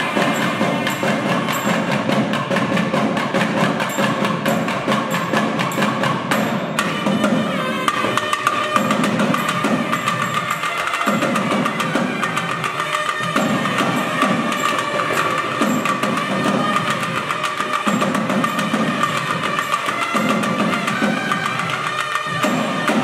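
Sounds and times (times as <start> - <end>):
rapid barrel drum strokes: 0.0 - 23.0.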